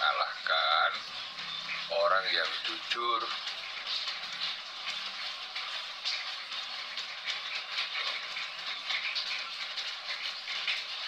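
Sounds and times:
faint crackle: 0.0 - 11.0
hissing background noise: 0.0 - 11.0.

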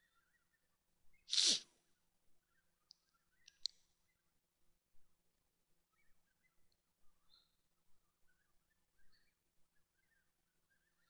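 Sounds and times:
person sneezing: 1.3 - 1.6.

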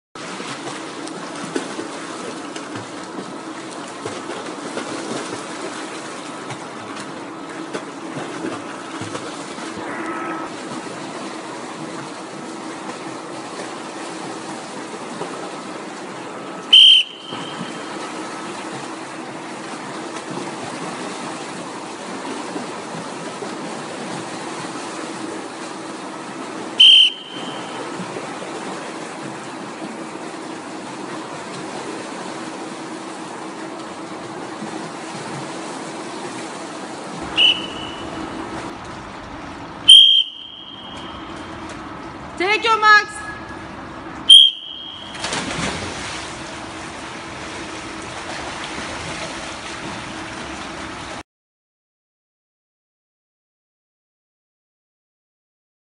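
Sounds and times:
swimmers splashing: 0.2 - 51.2
whistle blasts: 16.7 - 17.9, 26.8 - 27.8, 37.3 - 38.3, 39.9 - 41.5, 44.3 - 45.3.

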